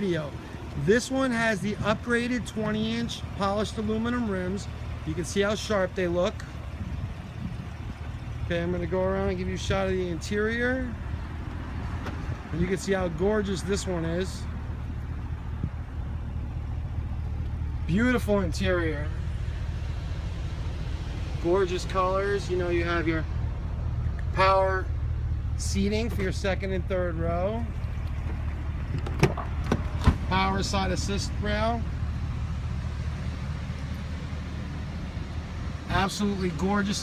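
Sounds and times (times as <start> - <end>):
car engine idling: 0.0 - 37.0
low rumble of vehicle noise: 0.0 - 37.0.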